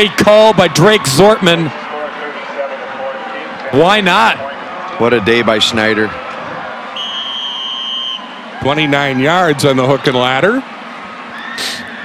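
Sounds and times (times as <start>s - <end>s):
stadium noise: 0.0s - 12.0s
referee's whistle: 7.0s - 8.4s.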